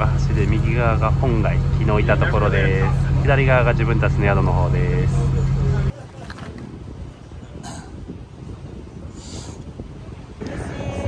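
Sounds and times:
boat engine droning: 0.0s - 6.0s
wind and water noise: 0.0s - 11.0s.

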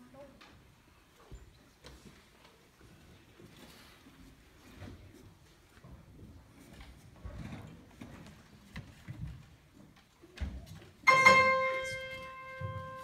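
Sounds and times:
footsteps and shuffling: 0.2s - 13.0s.

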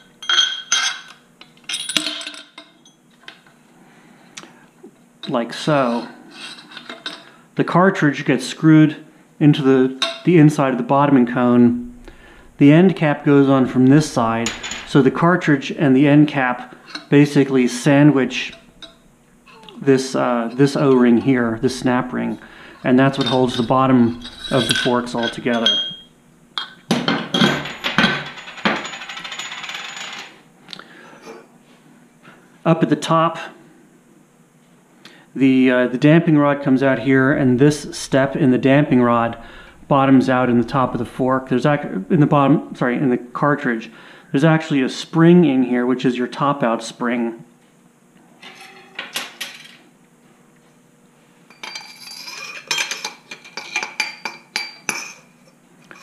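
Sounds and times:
metal parts clinking on steel table: 0.0s - 3.0s, 5.9s - 7.3s, 14.0s - 15.0s, 22.9s - 30.4s, 51.5s - 55.3s
metal rod clinking in tube: 23.1s - 26.8s.

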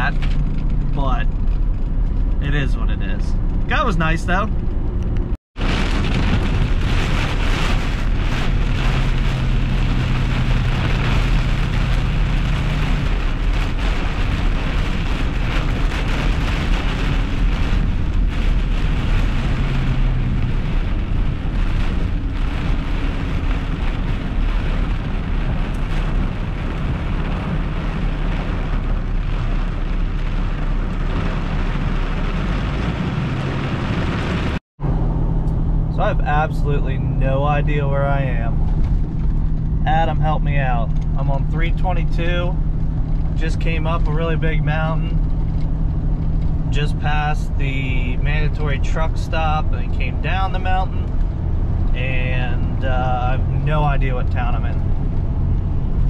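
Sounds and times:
truck engine and road noise: 0.0s - 56.0s
heavy rain on truck roof: 5.6s - 34.6s, 40.6s - 56.0s.

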